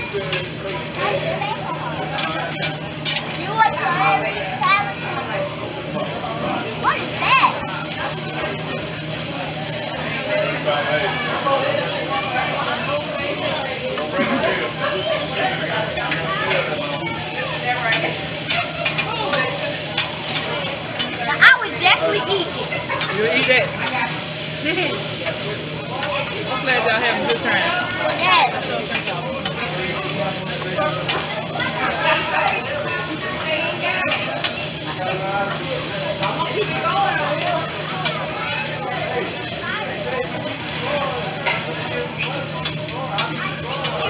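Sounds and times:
diners chattering: 0:00.0 - 0:44.0
rice sizzling on a griddle: 0:00.0 - 0:44.0
metal spatulas scraping: 0:02.2 - 0:03.4, 0:17.9 - 0:21.2.

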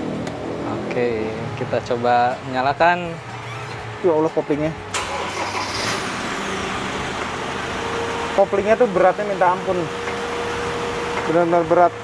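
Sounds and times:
diesel engine idling: 0:01.0 - 0:12.0.

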